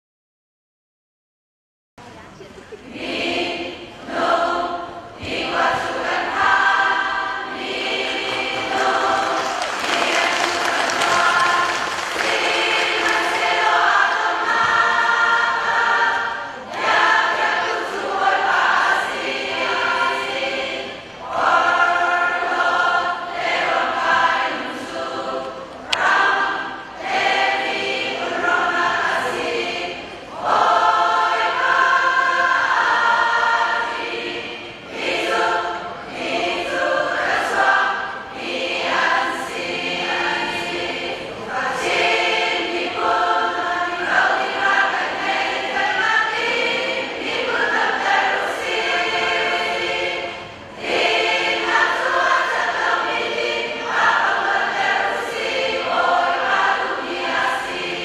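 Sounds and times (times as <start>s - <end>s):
women's choir singing: 2.8s - 58.0s.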